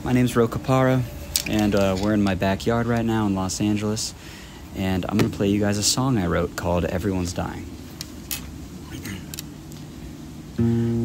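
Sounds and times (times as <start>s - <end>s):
acoustic guitar chord strummed: 10.6s - 11.0s.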